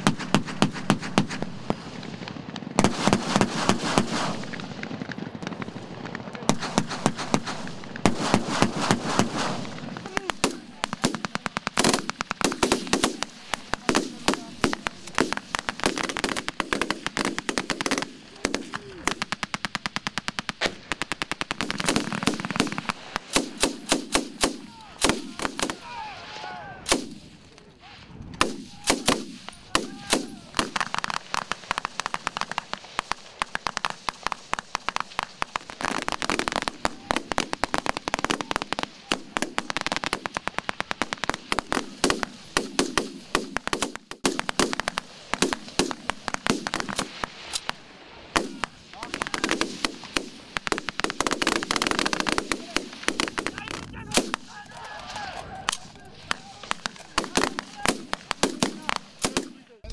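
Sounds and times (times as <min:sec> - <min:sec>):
rifle and machine gun fire: 0:00.0 - 0:26.0, 0:26.9 - 0:27.3, 0:28.4 - 0:54.6, 0:55.6 - 0:59.9.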